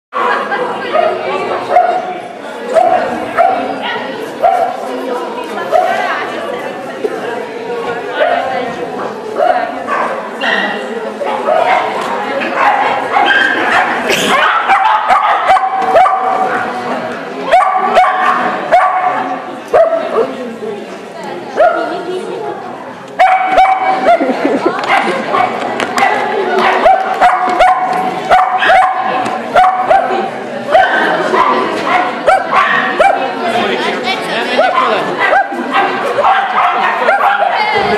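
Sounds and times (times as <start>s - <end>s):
murmur of voices in a hall: 0.1s - 37.9s
small dog barking: 12.6s - 16.4s, 17.5s - 19.2s, 23.2s - 24.2s, 24.9s - 30.2s, 30.8s - 33.2s, 34.6s - 37.6s.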